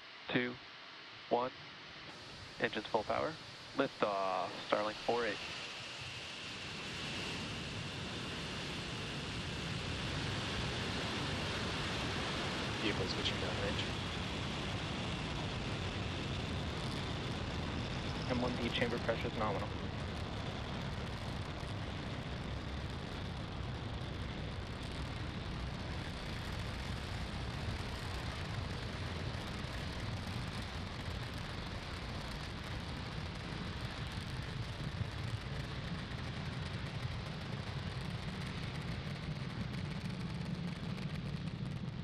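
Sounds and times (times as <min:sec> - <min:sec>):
rocket engines rumbling: 0:01.2 - 0:42.0.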